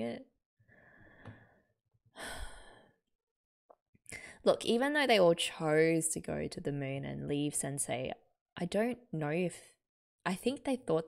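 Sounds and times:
woman sighing: 0:02.2 - 0:02.8.

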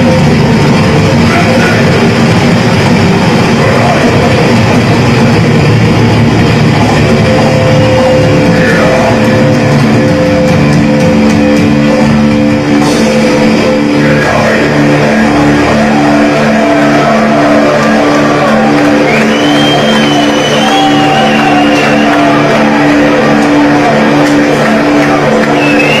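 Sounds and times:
distorted electric guitars: 0:00.0 - 0:26.0
guitar feedback squeal: 0:06.7 - 0:26.0.

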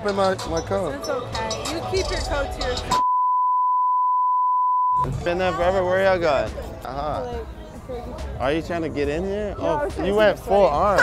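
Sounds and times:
censor bleep: 0:03.0 - 0:05.1.

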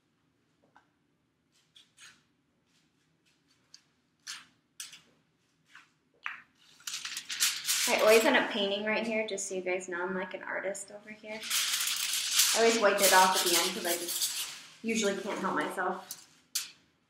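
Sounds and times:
foil crinkling and rustling: 0:06.7 - 0:08.4, 0:11.3 - 0:15.4
brush scraping over foil: 0:06.8 - 0:08.4, 0:11.3 - 0:16.2.

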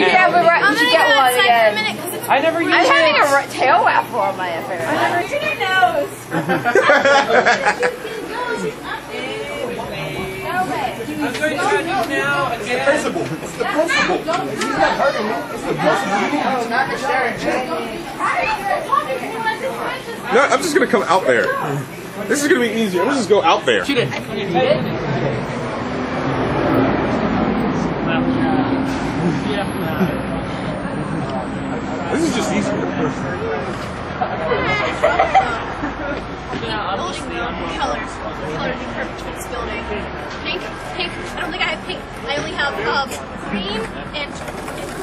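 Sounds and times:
people chattering: 0:00.0 - 0:45.0
people's voices: 0:00.0 - 0:45.0
vehicle traffic: 0:00.0 - 0:45.0.

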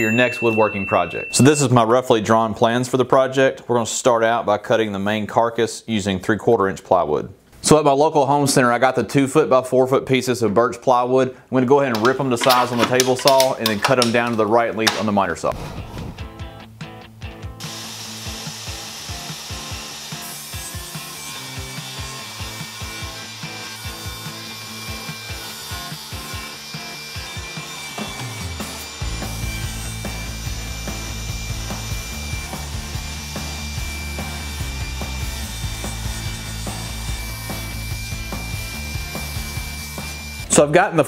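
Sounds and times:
table saw cutting plywood: 0:17.6 - 0:40.5.

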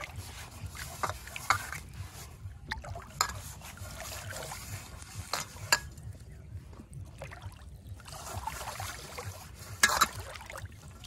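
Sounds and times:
fingers mixing bait in steel plate: 0:00.0 - 0:02.1.

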